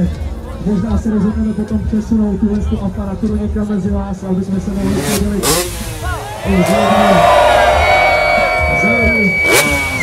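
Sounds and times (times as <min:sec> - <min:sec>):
motorbike engine revving: 0:04.6 - 0:10.0.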